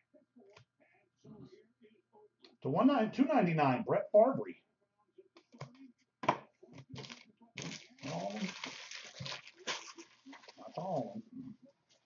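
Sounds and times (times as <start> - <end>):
card wrappers crinkling: 7.0 - 11.2.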